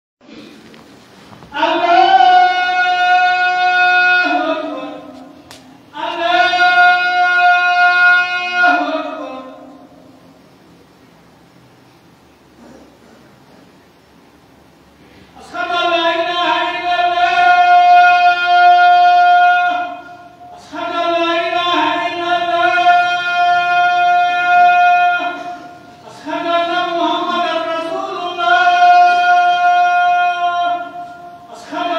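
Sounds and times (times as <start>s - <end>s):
man singing long note: 1.5s - 10.2s, 15.4s - 31.9s
man calling to prayer: 1.5s - 10.4s, 15.3s - 31.9s.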